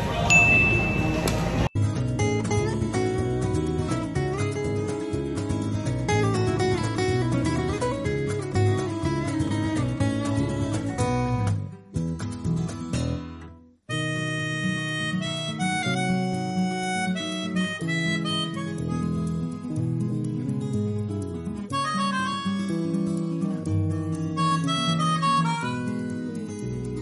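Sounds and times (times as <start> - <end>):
instrumental background music: 0.3 - 27.0.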